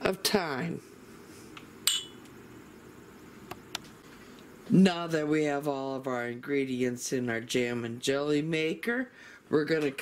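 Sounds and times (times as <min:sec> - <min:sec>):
ceramic bowl clinking: 0:01.9 - 0:02.2.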